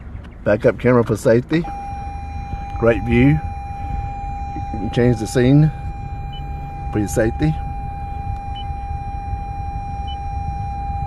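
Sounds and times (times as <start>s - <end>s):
low vehicle rumble: 0.0s - 11.0s
short high beep: 1.6s - 11.0s
steady electronic reversing tone: 1.6s - 11.0s.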